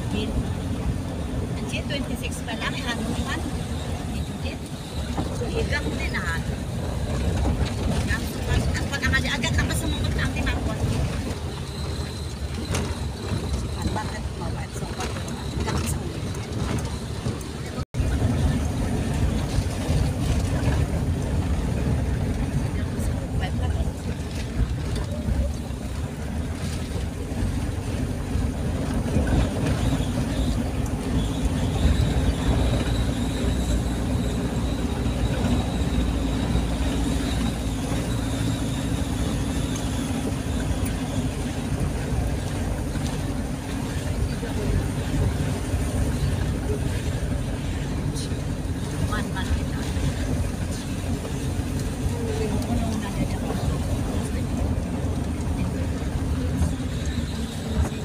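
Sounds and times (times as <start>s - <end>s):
vehicle engine and road noise: 0.0s - 58.0s.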